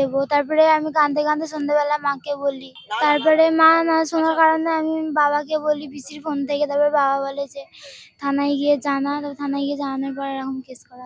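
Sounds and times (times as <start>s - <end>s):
high-pitched voice singing: 2.6s - 3.4s.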